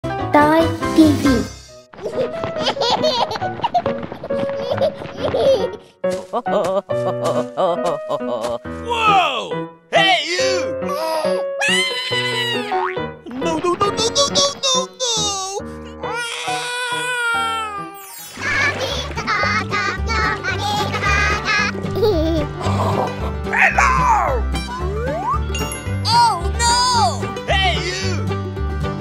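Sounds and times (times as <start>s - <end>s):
upbeat children's music: 0.2s - 29.0s
baby giggling and laughing: 2.0s - 5.8s, 10.4s - 15.7s, 20.6s - 23.2s, 27.6s - 28.2s
baby crying: 10.0s - 12.9s, 14.8s - 18.0s, 26.2s - 28.2s.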